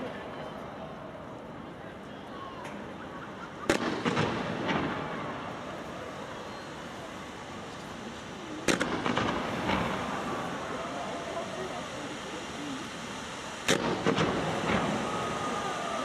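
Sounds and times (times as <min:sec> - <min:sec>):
faint voices talking: 0:00.0 - 0:16.0
fireworks bangs: 0:03.3 - 0:16.0.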